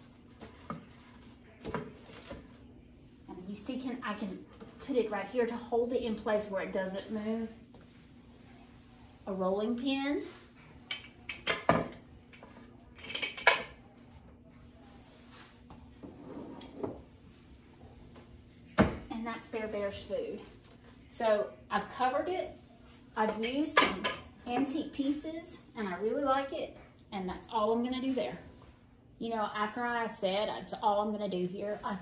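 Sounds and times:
kitchen items knocking and clinking: 10.9 - 13.8.

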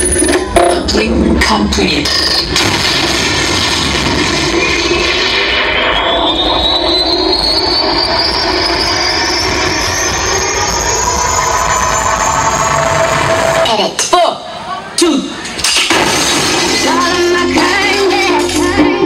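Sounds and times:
jet engine roar with high whine: 1.3 - 13.8.

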